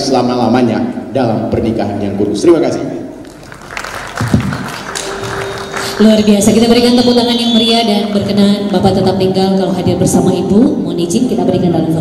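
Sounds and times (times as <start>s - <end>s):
audience clapping: 3.2s - 6.9s
background music: 3.4s - 12.0s
held musical note: 4.6s - 8.6s.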